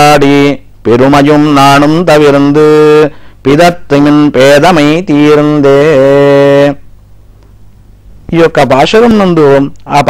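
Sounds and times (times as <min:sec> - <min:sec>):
man chanting: 0:00.0 - 0:06.8, 0:08.3 - 0:10.0.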